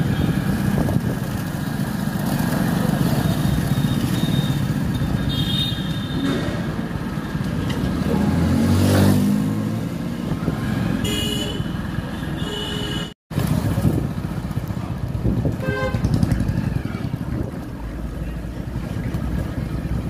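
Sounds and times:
car engine rumbling in traffic: 0:00.0 - 0:20.0.

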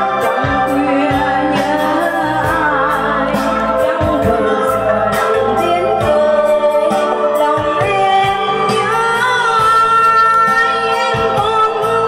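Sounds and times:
instrumental accompaniment: 0:00.0 - 0:12.0
woman singing a ballad: 0:00.0 - 0:12.0.

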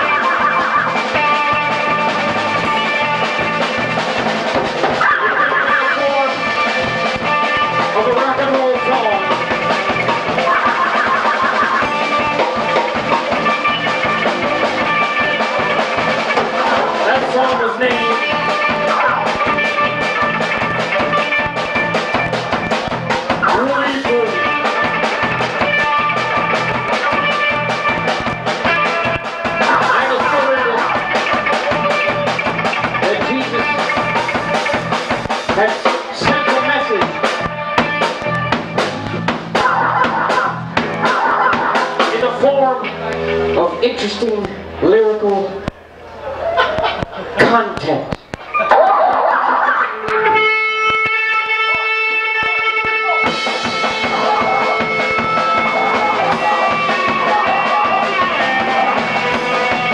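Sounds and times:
drum kit steady beat: 0:00.0 - 0:46.0, 0:50.1 - 0:59.9
electric bass: 0:00.0 - 0:48.6, 0:49.8 - 0:59.9
electric guitar: 0:00.0 - 0:59.9.

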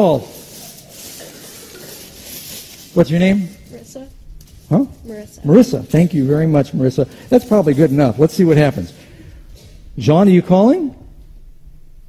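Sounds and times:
aluminium foil crinkling: 0:00.0 - 0:08.9.

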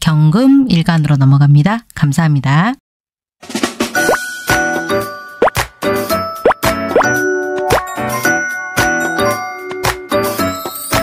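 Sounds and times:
rising pop sound effects: 0:04.0 - 0:04.3, 0:05.4 - 0:05.8, 0:06.4 - 0:08.0
bell-like plucked jingle: 0:04.2 - 0:11.0.

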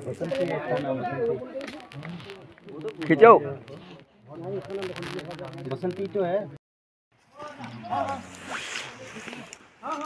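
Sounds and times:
men calling out: 0:07.4 - 0:10.0
short rasping scrape: 0:08.0 - 0:09.6.

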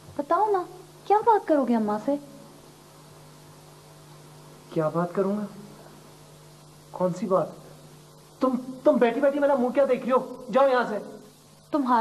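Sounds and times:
faint hiss: 0:00.0 - 0:12.0
steady electrical hum: 0:00.0 - 0:12.0
woman's voice: 0:00.1 - 0:02.5, 0:04.7 - 0:05.7, 0:11.7 - 0:12.0.

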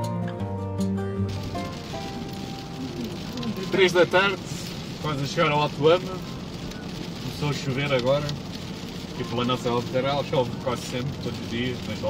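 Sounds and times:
acoustic guitar music: 0:00.0 - 0:07.9
car driving on road: 0:01.3 - 0:12.0.

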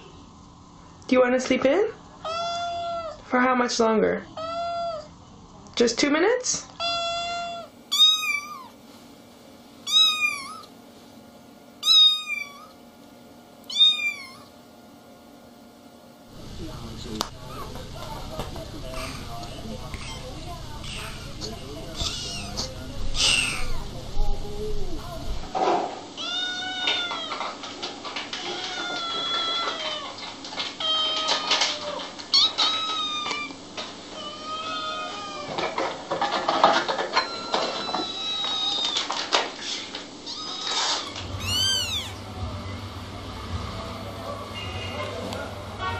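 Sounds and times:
kitten meowing: 0:06.8 - 0:08.8, 0:09.9 - 0:10.7, 0:11.8 - 0:12.8, 0:13.7 - 0:14.5, 0:22.0 - 0:23.8, 0:26.2 - 0:27.4, 0:30.8 - 0:33.6, 0:34.2 - 0:35.5, 0:40.3 - 0:42.2.

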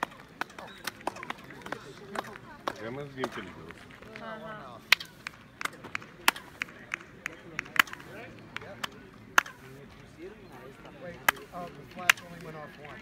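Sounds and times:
sharp hand claps: 0:04.9 - 0:09.8, 0:11.1 - 0:13.0.

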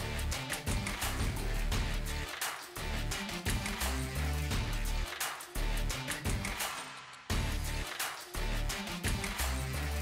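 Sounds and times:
instrumental music with beat: 0:00.0 - 0:10.0.

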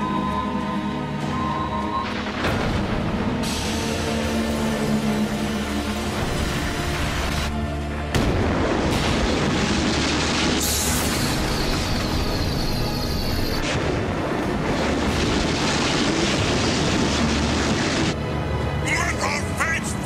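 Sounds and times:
rumbling booming sound effects: 0:02.3 - 0:03.9, 0:08.1 - 0:12.2.

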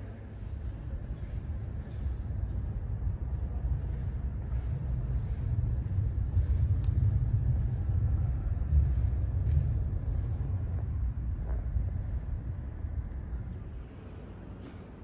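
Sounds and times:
low steady rumble: 0:00.0 - 0:15.0.

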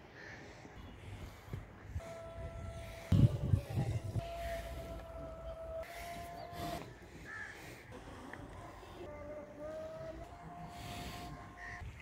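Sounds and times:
bird calls: 0:04.4 - 0:07.9.

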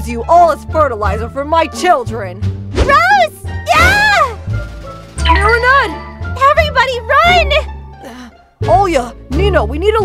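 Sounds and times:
background music: 0:00.0 - 0:10.0
young woman screaming: 0:03.7 - 0:04.4.

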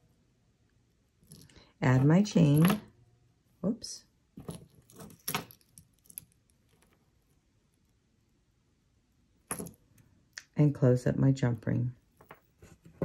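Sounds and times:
metal jewellery chain clinking: 0:04.4 - 0:06.9, 0:09.5 - 0:09.8.

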